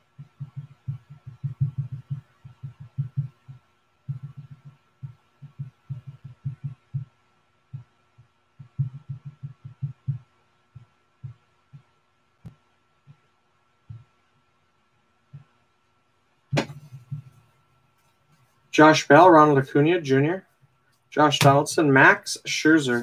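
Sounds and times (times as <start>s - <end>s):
low muffled thumps: 0.2s - 7.1s, 8.6s - 10.2s, 16.5s - 17.4s.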